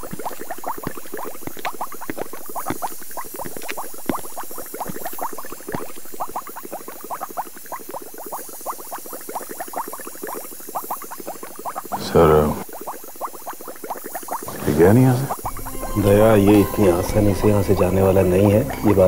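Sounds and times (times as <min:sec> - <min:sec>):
liquid bubbling in glassware: 0:00.0 - 0:19.0.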